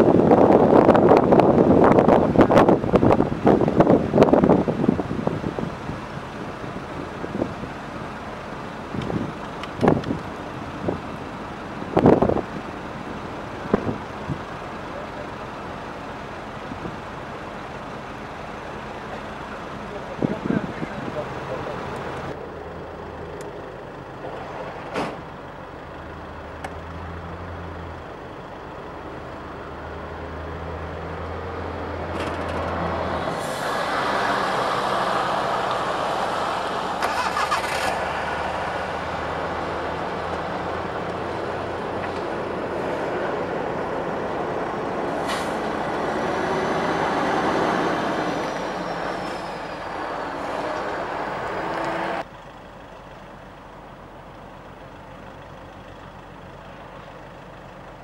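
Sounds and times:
low engine hum: 0.0s - 58.0s
steady traffic noise: 0.0s - 58.0s.

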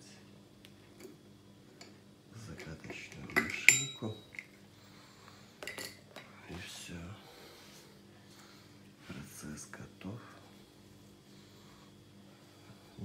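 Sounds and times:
ringing metallic clink: 3.4s - 4.4s.

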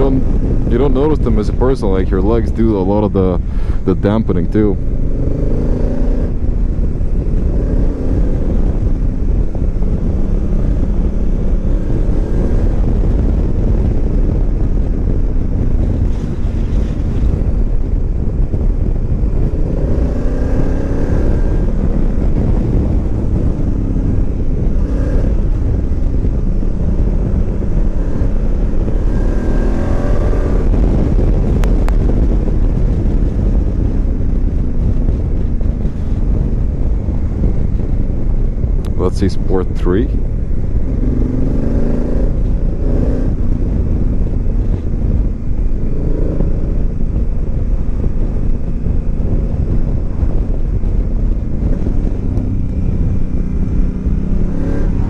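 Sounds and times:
motorcycle engine accelerating: 0.0s - 55.0s
wind on microphone: 0.0s - 55.0s.

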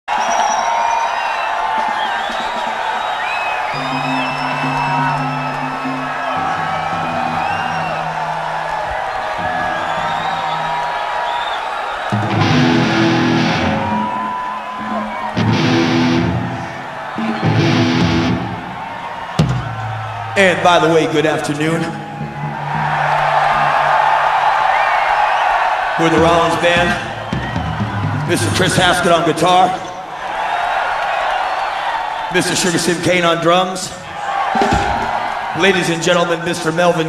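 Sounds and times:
crowd noise: 0.0s - 37.0s
rock band playing: 3.6s - 11.2s, 12.1s - 20.4s, 21.9s - 24.7s, 25.9s - 29.0s
loud full-band bursts: 12.1s - 14.4s, 15.0s - 20.9s.

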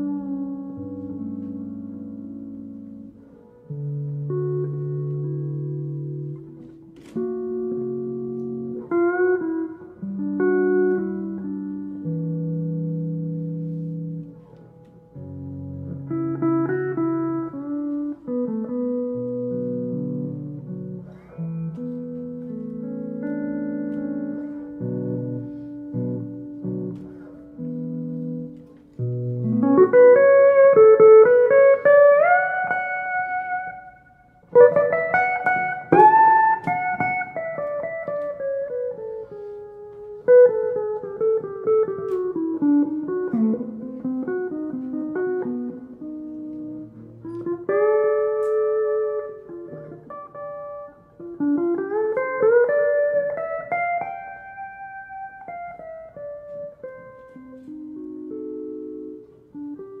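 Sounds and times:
solo guitar slow melody: 0.0s - 60.0s.

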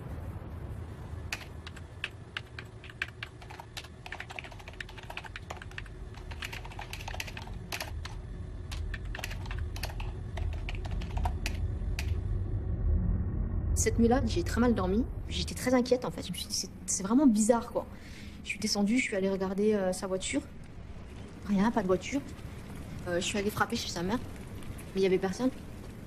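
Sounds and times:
low rumble: 0.0s - 2.5s, 4.5s - 26.0s
typing on computer keyboard: 1.3s - 12.2s.

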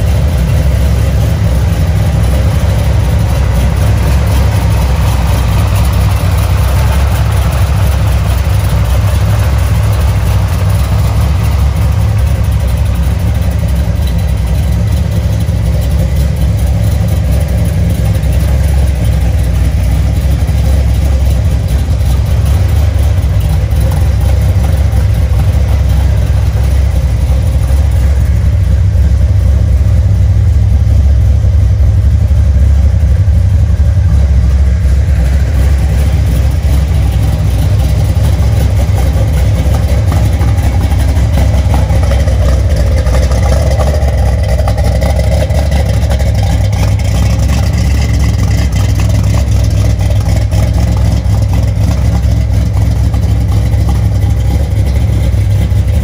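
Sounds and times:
supercharged car engine idling: 0.0s - 56.0s.

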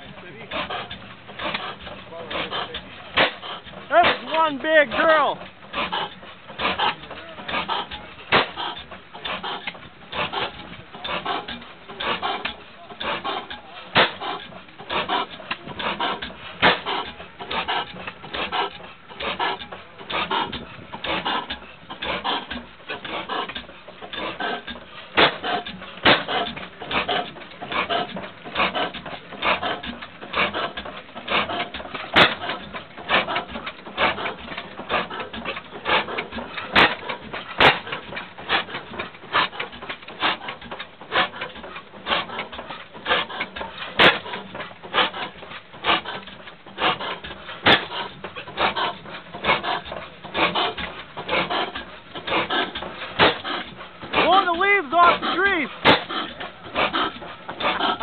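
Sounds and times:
gas engine rhythmic clatter: 0.0s - 58.0s.

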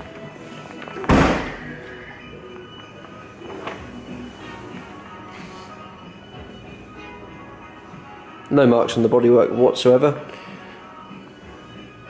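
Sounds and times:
background music: 0.0s - 12.0s
car boot lid slamming shut: 1.0s - 1.6s.

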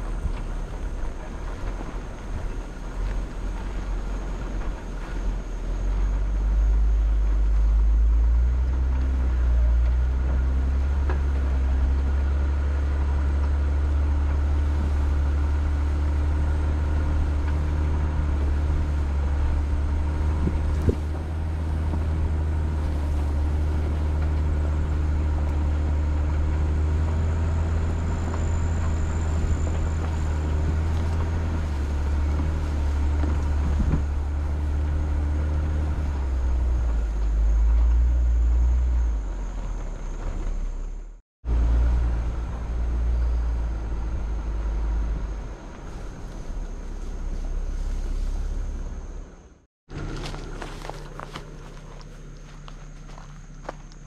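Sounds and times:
vehicle engine running: 0.0s - 54.0s.

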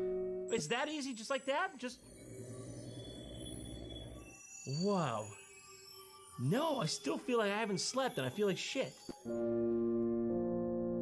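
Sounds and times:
low electronic humming drone: 1.9s - 5.4s.

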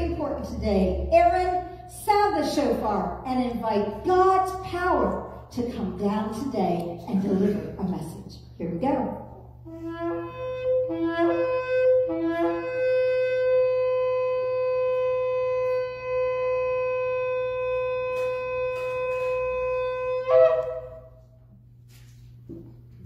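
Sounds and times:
shofar blasts: 9.7s - 21.4s.

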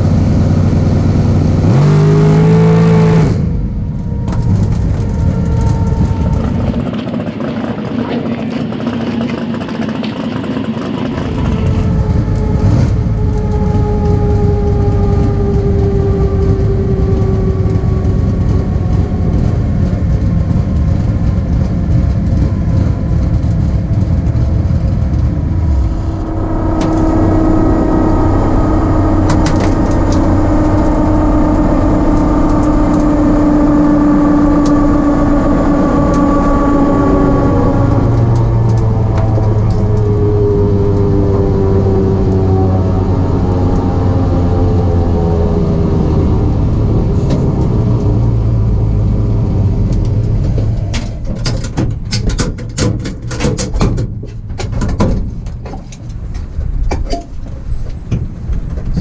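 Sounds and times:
race car engine running: 0.0s - 59.0s
sharp clicks and rattles: 4.0s - 41.1s, 49.7s - 59.0s.

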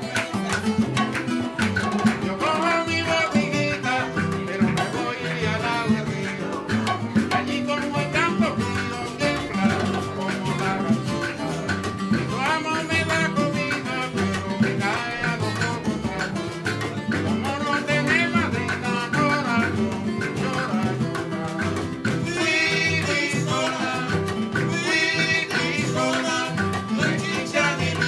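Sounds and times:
guitar bass and bongos rhythm: 0.0s - 28.0s.

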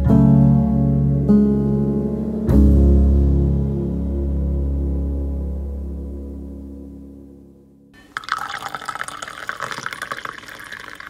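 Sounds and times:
coffee pouring into ceramic mug: 8.0s - 11.0s.

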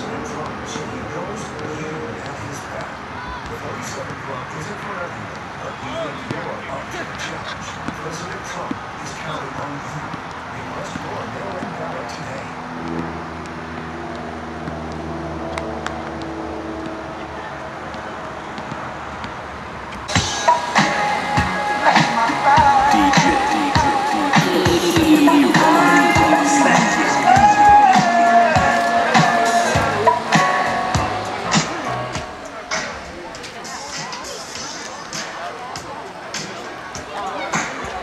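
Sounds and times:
distant voices chatter: 0.0s - 38.0s
basketball bouncing: 12.8s - 25.2s
loud music: 20.1s - 35.4s.

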